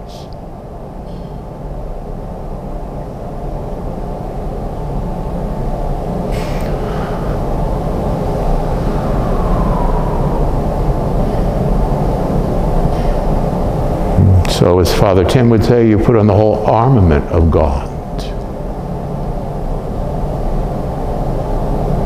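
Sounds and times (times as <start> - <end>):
low steady rumble: 0.0 - 22.0.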